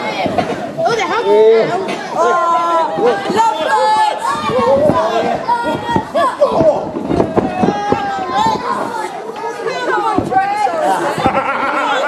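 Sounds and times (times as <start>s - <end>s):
audience shouting and chattering: 0.0s - 12.0s.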